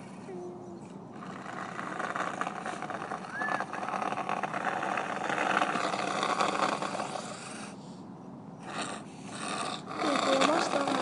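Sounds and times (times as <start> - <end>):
toy truck plow scraping: 1.1 - 7.8, 8.6 - 11.0
short squeak: 3.3 - 3.7.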